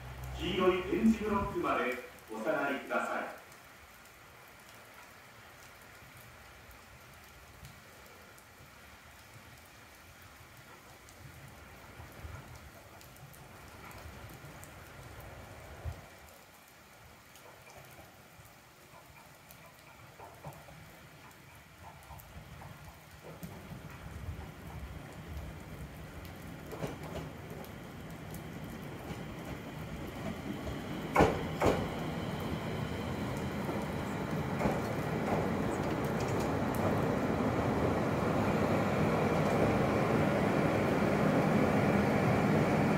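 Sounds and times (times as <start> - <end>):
approaching train rumble: 0.0 - 2.5, 17.6 - 42.9
rain pattering on roof: 0.0 - 42.9.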